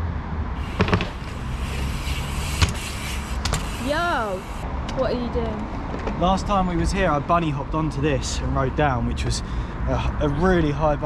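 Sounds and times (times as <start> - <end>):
bike tyres rolling over paving: 0.6 - 4.6.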